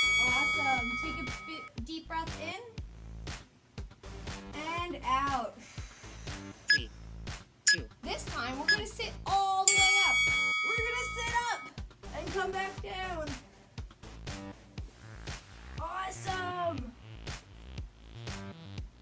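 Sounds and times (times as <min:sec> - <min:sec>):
bell-like strikes: 0:00.0 - 0:01.7, 0:09.7 - 0:11.7.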